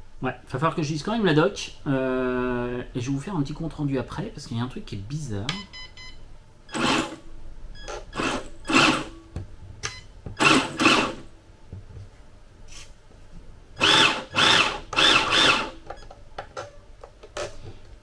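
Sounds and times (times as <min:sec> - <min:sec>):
electric toy car motor whirring: 0:13.8 - 0:15.8.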